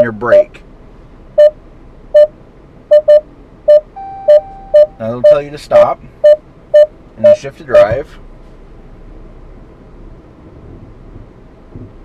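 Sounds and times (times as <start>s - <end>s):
parking sensor short beeps: 1.4s - 5.5s, 6.2s - 7.9s
steady high warning tone: 2.9s - 5.5s, 6.2s - 7.5s.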